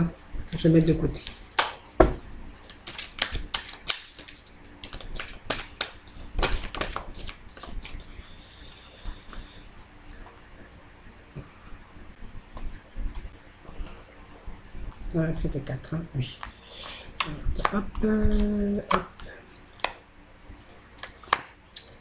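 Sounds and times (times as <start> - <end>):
cards clicking and snapping: 2.6 - 8.0.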